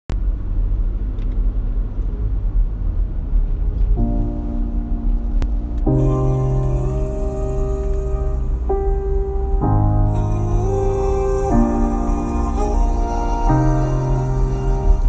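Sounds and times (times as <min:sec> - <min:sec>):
car driving rumble: 0:00.1 - 0:15.0
slow music with held chords: 0:03.9 - 0:15.0.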